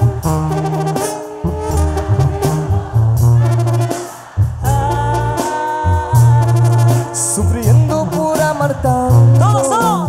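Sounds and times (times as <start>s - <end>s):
live brass band music: 0.0s - 10.0s
tuba bass line: 0.0s - 10.0s.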